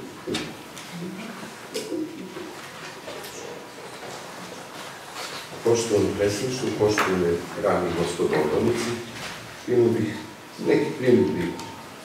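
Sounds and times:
man speaking: 5.6s - 11.8s.

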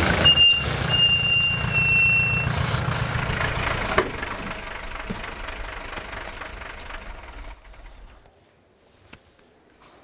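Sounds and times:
engine low rumble: 0.0s - 8.5s
high-pitched squeal: 0.2s - 2.8s.

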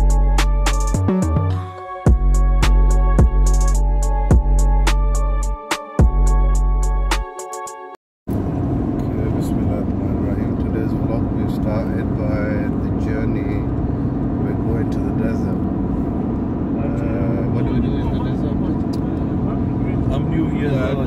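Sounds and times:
vehicle engine and road rumble: 8.3s - 21.0s.

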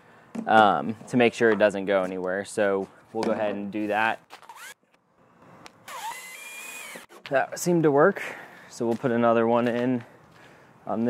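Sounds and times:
cordless drill motor whine: 4.4s - 4.8s, 5.9s - 7.1s.

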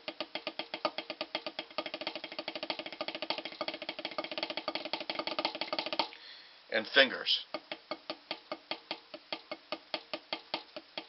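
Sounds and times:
drumsticks rolling on practice pad: 0.0s - 6.2s, 7.5s - 11.0s.

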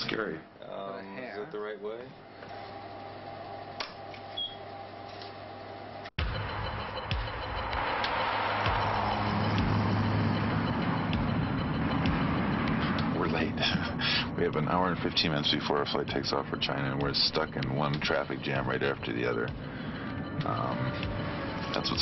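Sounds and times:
motorway traffic: 6.3s - 22.0s.

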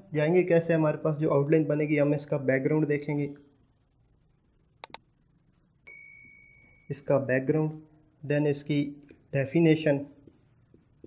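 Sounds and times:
mouse clicks: 4.8s - 5.0s
bright bell ding: 5.9s - 6.9s.

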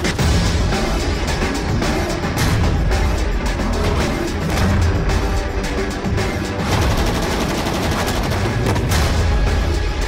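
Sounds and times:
rapid automatic rifle fire: 6.6s - 9.2s.

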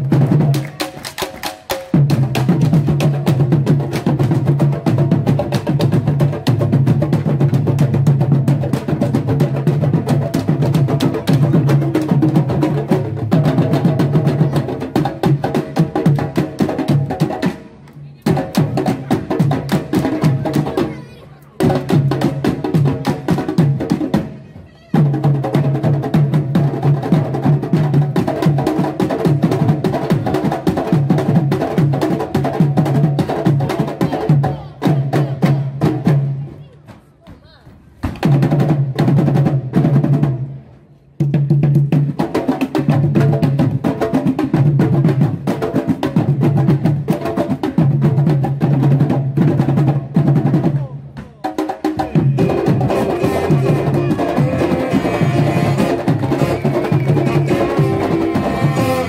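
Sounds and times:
drum line playing fast rhythm: 0.0s - 59.0s.

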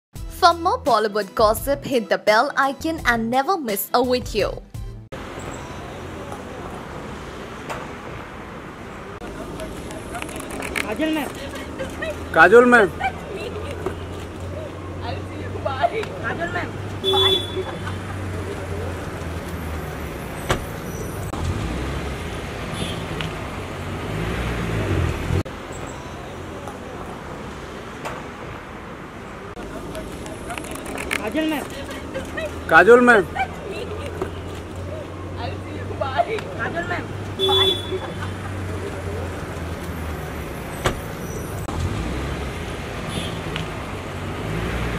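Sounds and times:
street traffic: 0.2s - 44.9s
car door shutting: 20.4s - 20.9s, 40.7s - 41.2s.

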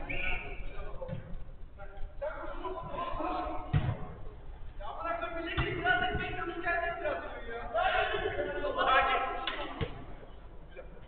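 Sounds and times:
football thump: 3.7s - 4.2s, 5.5s - 6.4s.

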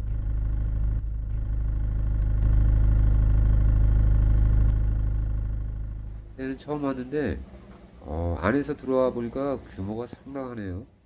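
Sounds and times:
car engine rumble from cabin: 0.0s - 6.4s.

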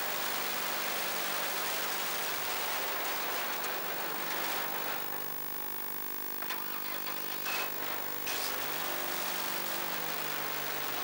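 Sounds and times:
racing car engine: 6.4s - 11.0s.

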